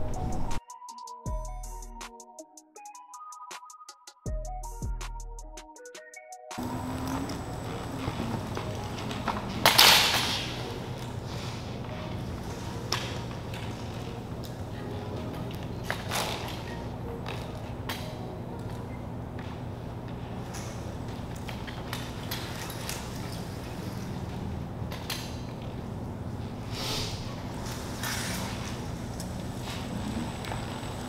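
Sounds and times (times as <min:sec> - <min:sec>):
hoverboard rolling humming: 0:06.6 - 0:09.8, 0:10.4 - 0:31.0.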